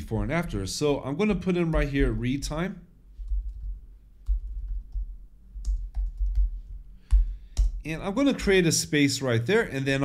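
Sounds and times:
typing on computer keyboard: 3.2 - 6.5.

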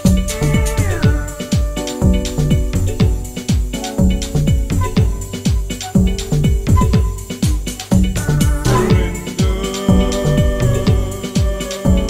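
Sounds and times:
held synth chords: 0.0 - 12.0
kick drum with falling pitch: 0.0 - 12.0
ticking hi-hats: 0.0 - 12.0.

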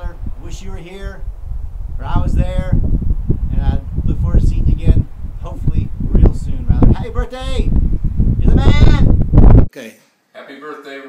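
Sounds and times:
wind buffeting microphone: 0.0 - 9.7.

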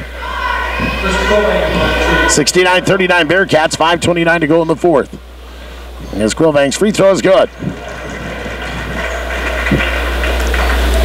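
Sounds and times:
murmur of crowd: 0.0 - 3.0
low electrical hum: 0.0 - 11.0.

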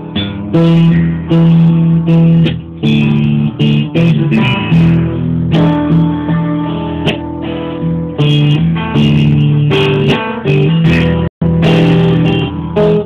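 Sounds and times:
guitar: 0.0 - 13.0.

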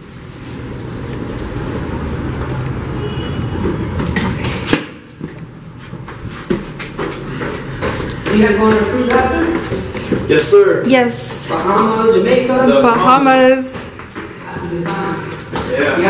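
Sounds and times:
suitcase wheels rumbling on floor: 5.2 - 16.0.

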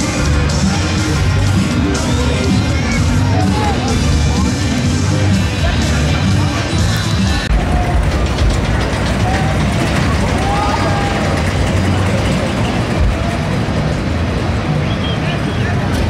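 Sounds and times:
distant voices calling out: 0.0 - 16.0
rumble of rides and machinery: 0.0 - 16.0.

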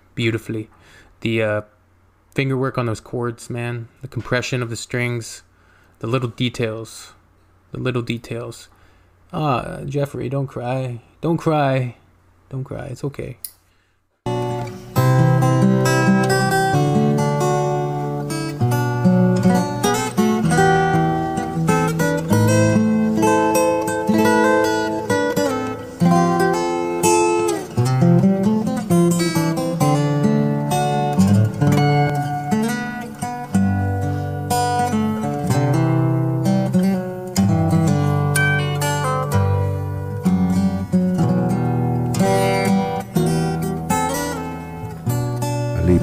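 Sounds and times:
fingerstyle acoustic guitar: 14.3 - 46.0.

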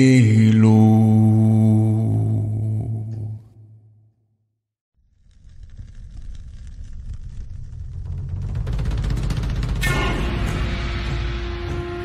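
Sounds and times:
low voice holding chant-like note: 0.0 - 3.5.

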